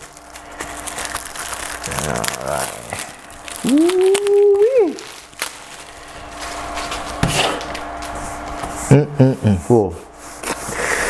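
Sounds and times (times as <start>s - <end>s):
plastic wrap crinkling and tearing: 0.0s - 8.6s.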